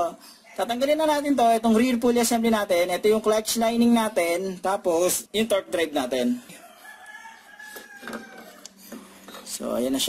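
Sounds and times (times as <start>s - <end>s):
rooster crowing faintly: 6.5s - 8.8s.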